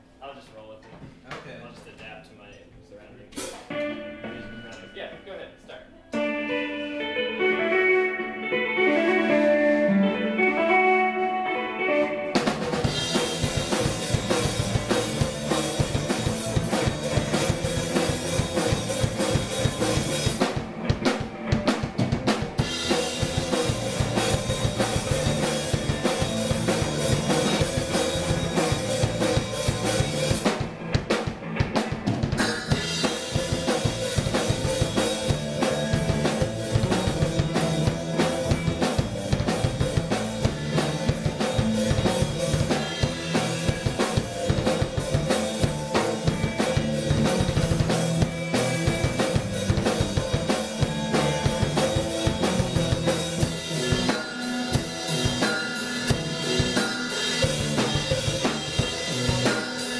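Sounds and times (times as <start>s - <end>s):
drum kit: 0.8s - 5.4s, 6.1s - 59.9s
electric guitar playing: 3.7s - 59.9s
electric bass: 6.2s - 59.9s.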